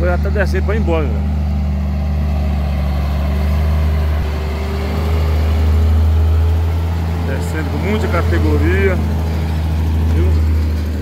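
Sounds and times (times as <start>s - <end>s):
truck diesel engine droning: 0.0s - 11.0s.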